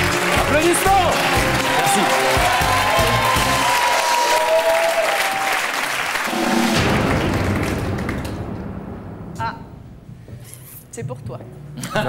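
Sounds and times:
studio audience applauding: 0.0 - 8.4.

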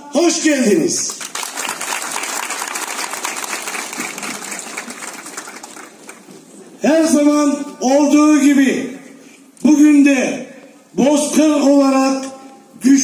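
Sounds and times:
audience applauding: 1.1 - 6.3.

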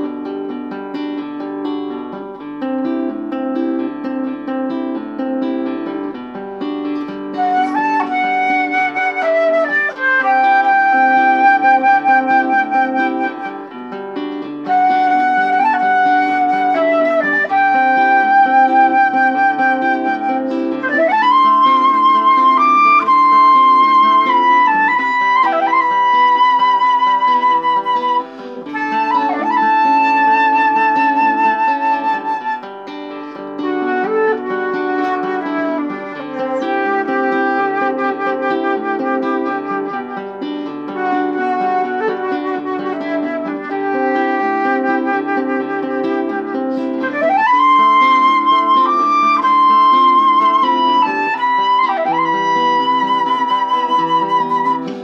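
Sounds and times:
guitar chords: 0.0 - 55.0
flute playing slow melody: 7.0 - 55.0.

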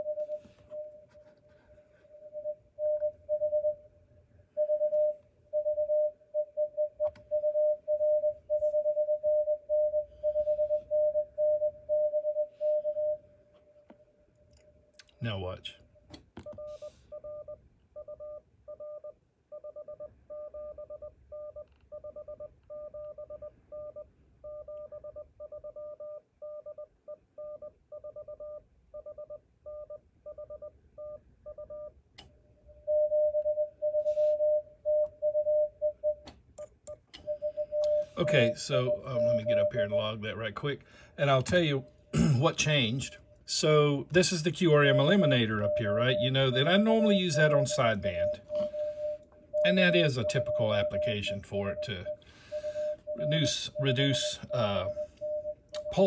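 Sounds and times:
morse code sidetone: 0.0 - 3.8, 4.6 - 13.2, 16.4 - 31.9, 32.8 - 36.2, 37.2 - 40.2, 44.6 - 56.0
quieter keyed morse tone: 37.2 - 40.4, 42.7 - 56.0.

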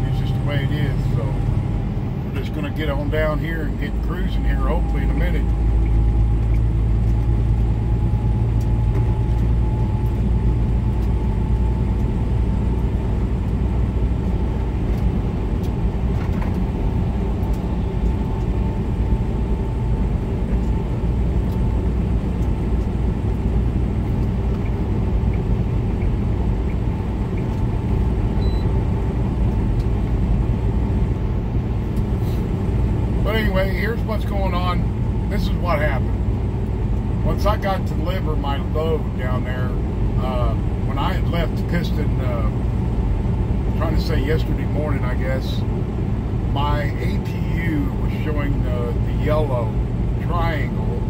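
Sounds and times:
diesel engine and tyre drone: 0.0 - 51.0
faint steady whine: 0.0 - 51.0.

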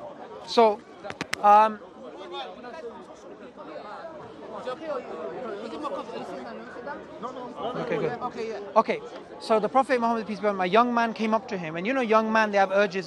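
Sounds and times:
men talking in overlapping chatter: 0.0 - 13.0.

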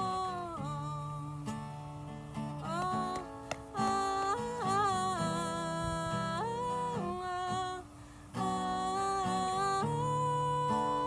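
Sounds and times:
strummed acoustic guitar: 0.0 - 11.0
woman singing held notes: 2.6 - 11.0.

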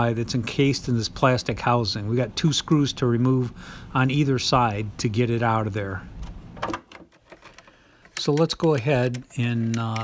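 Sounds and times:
light handling clicks and rubs: 7.0 - 10.0.

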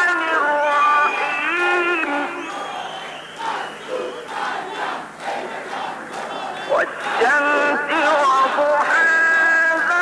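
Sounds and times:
crowd cheering and shouting: 0.3 - 10.0.

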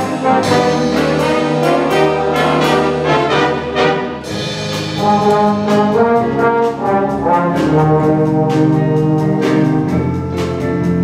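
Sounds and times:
big band horns sustained chords: 0.0 - 11.0.

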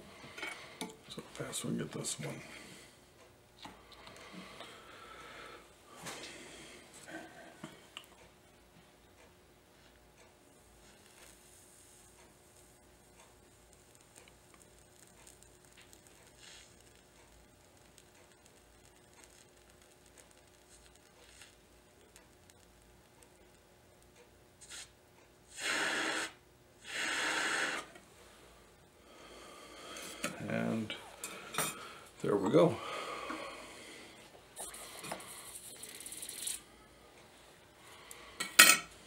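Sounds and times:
faint steady hiss: 0.0 - 9.0, 9.6 - 39.0.

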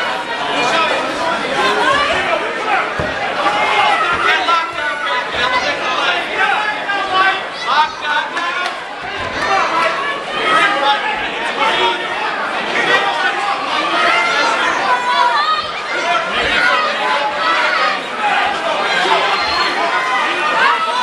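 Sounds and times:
crowd shouting: 0.0 - 21.0.

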